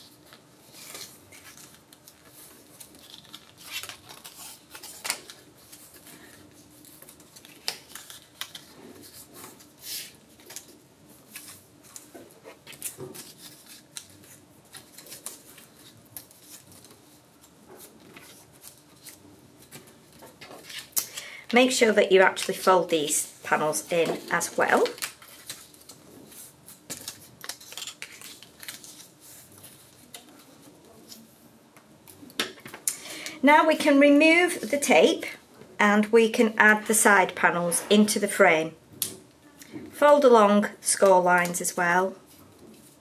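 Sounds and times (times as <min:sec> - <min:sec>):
card and tape crackling: 0:00.7 - 0:31.2.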